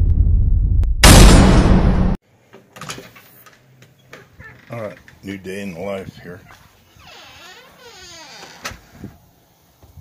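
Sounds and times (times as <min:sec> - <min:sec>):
deep cinematic boom hits: 0:00.0 - 0:02.2.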